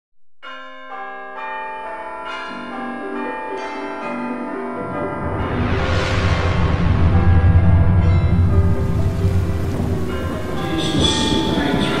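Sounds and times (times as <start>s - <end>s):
bells ringing notes: 0.4s - 12.0s.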